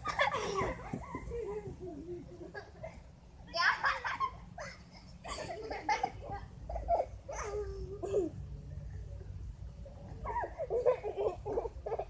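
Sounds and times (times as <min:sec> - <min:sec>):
children calling out and laughing: 0:00.0 - 0:09.4, 0:10.0 - 0:12.0.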